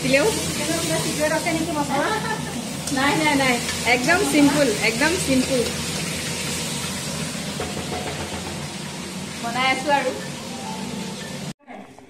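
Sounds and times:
onions frying hiss: 0:00.0 - 0:11.6.

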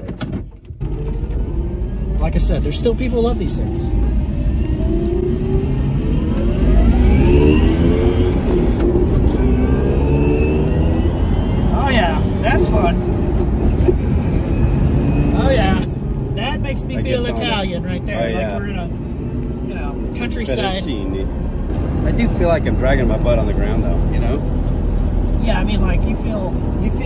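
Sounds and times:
voices inside car: 0:00.0 - 0:06.9, 0:10.6 - 0:27.0
car tyre and road noise: 0:00.0 - 0:27.0.

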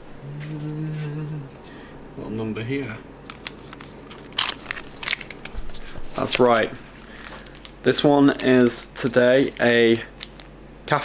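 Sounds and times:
paper and cardboard crinkling: 0:03.3 - 0:10.5.

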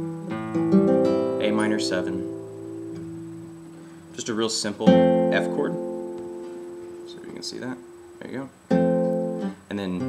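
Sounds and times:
acoustic guitar plucked notes: 0:00.0 - 0:10.0.

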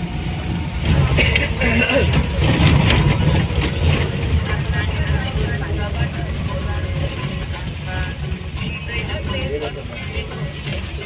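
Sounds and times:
music playing: 0:00.0 - 0:11.0
vehicle rumble on dirt road: 0:00.0 - 0:11.0.

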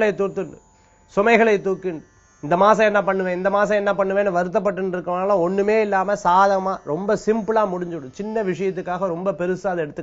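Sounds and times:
man speaking: 0:00.0 - 0:00.6, 0:01.2 - 0:10.0.

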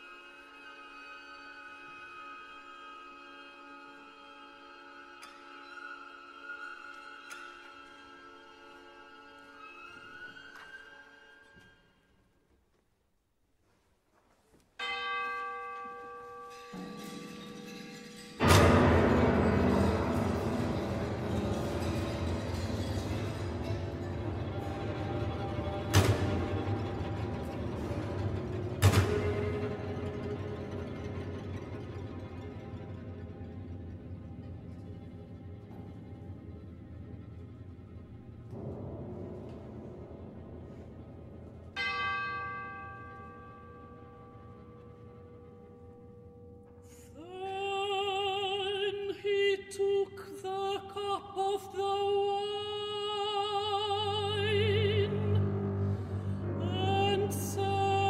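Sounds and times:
quiet sustained orchestral texture: 0:00.0 - 0:12.4, 0:16.3 - 0:58.0
orchestral bell struck: 0:14.8 - 0:28.2, 0:40.6 - 0:46.6.

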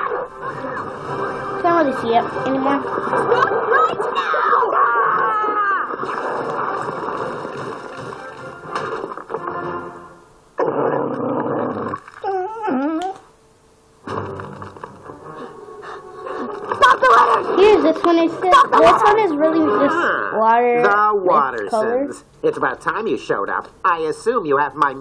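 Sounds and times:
cartoon background music: 0:00.0 - 0:04.7
cartoon voices: 0:02.7 - 0:06.0, 0:16.8 - 0:21.1.

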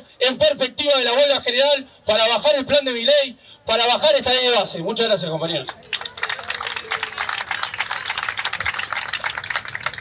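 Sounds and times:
crowd applauding: 0:05.7 - 0:10.0.

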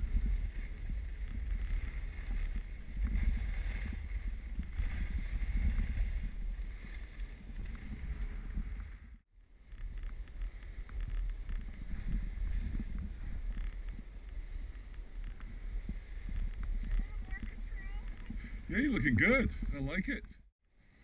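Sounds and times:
skis scraping over snow: 0:00.0 - 0:20.0
wind buffeting microphone: 0:00.0 - 0:20.4.

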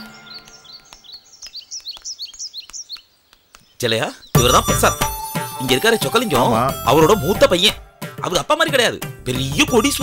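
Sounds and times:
small birds chirping: 0:00.0 - 0:07.6.

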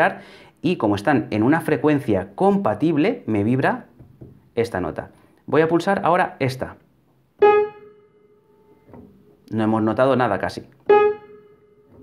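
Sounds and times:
upright piano note: 0:10.9 - 0:12.0.

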